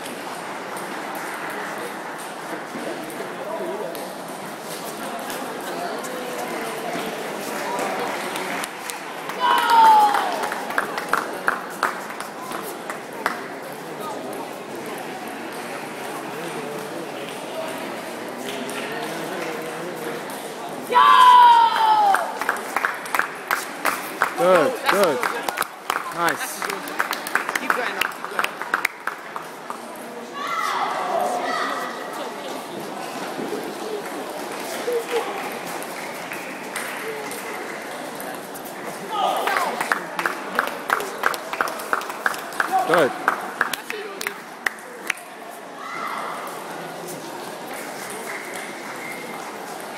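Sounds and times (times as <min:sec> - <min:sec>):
crowd chatter: 0:00.0 - 0:49.9
murmur of distant voices: 0:00.0 - 0:49.9.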